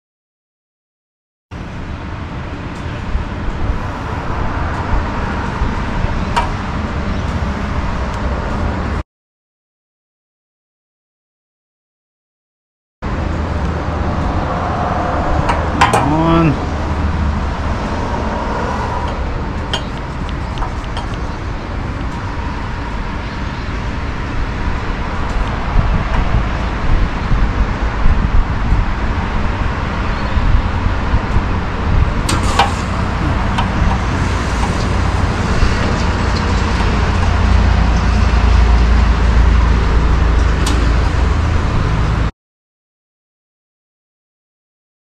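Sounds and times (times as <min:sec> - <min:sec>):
road traffic: 0:01.5 - 0:09.0, 0:13.0 - 0:42.3
wind: 0:01.5 - 0:09.0, 0:13.0 - 0:42.3
motorcycle engine rumble: 0:13.1 - 0:41.9.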